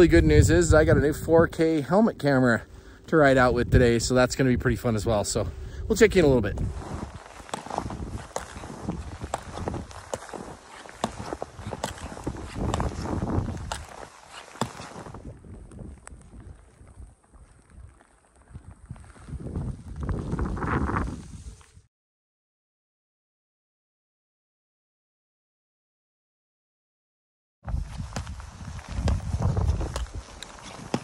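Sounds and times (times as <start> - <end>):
skins swishing over snow: 5.9 - 15.2, 27.7 - 31.0
pole plants and bindings clicking: 6.8 - 18.4, 28.2 - 31.0.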